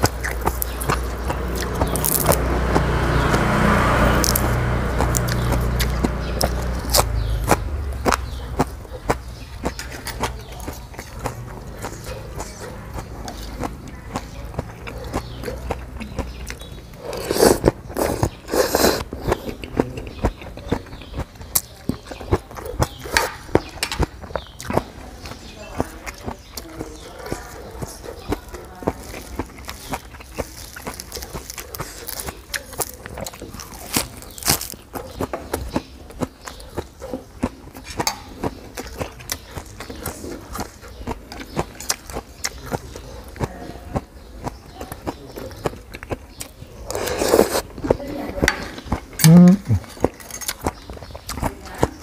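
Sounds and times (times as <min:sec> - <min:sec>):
chewing with wet mouth clicks: 0:00.0 - 0:52.0
slurping noodles: 0:16.9 - 0:19.6, 0:46.7 - 0:47.8.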